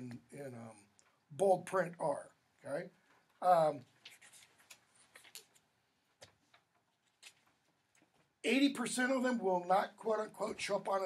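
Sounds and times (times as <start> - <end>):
paper sheets rustling: 3.9 - 5.6.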